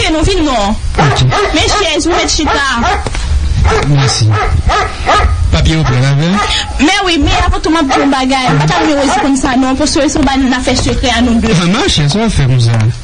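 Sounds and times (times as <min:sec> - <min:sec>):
voices talking and calling out: 0:00.0 - 0:12.9
dog-like barking: 0:01.0 - 0:06.8, 0:07.7 - 0:09.6.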